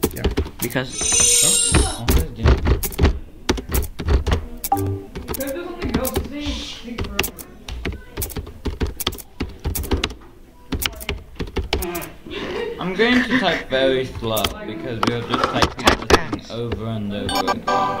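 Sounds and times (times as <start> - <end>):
voices talking: 0.6 - 2.2
typing on computer keyboard: 2.1 - 6.3, 7.0 - 12.1.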